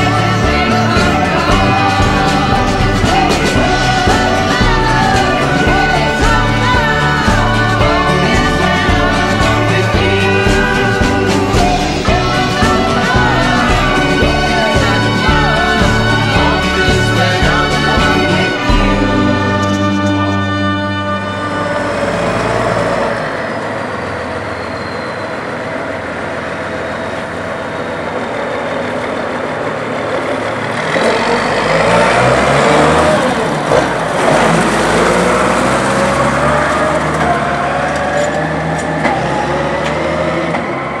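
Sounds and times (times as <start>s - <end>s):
tractor diesel engine running: 0.0s - 41.0s.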